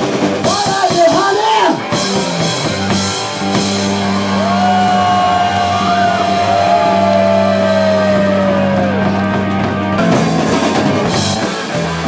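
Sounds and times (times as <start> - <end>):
sustained guitar and bass chord: 2.0 - 12.0.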